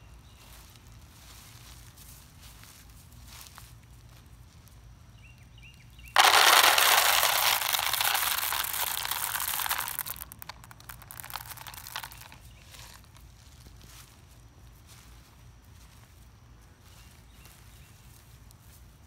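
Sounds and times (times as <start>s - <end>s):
scattered crackles: 6.2s - 13.2s.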